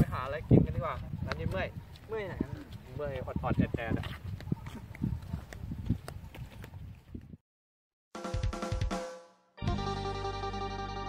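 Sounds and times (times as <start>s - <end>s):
flip-flop footsteps on concrete: 1.3s - 2.9s, 4.0s - 7.4s.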